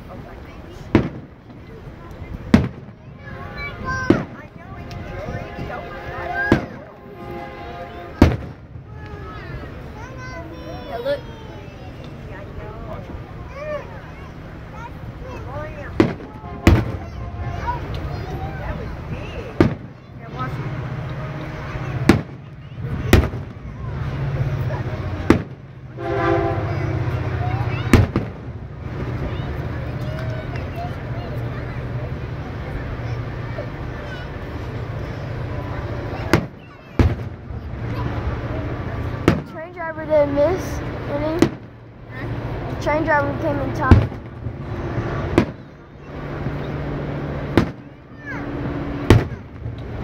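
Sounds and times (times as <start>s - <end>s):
firework shells bursting: 19.6s - 20.0s, 47.4s - 47.9s.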